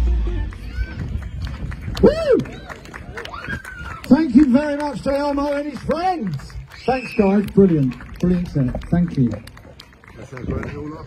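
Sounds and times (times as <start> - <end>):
audience clapping: 0.5 - 11.0.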